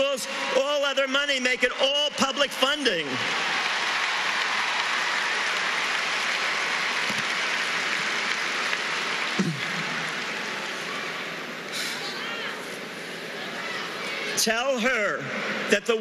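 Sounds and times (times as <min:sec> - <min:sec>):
large audience applauding: 0:00.0 - 0:12.6.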